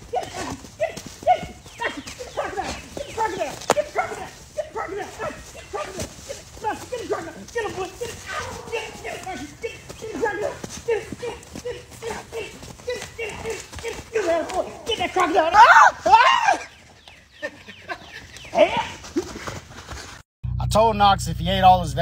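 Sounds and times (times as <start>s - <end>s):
dog yelping: 8.0s - 10.2s.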